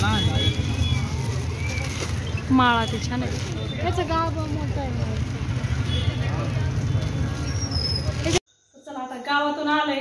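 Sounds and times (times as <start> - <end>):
indistinct chatter of passers-by: 0.0 - 8.4
low rumble of traffic: 0.0 - 8.4.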